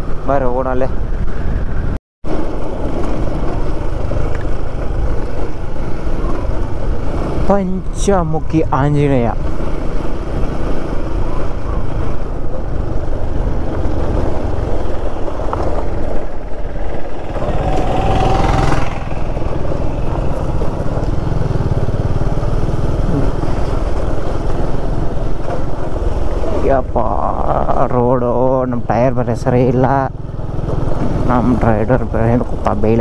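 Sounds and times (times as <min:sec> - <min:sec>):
motorcycle engine running: 0:02.3 - 0:33.0.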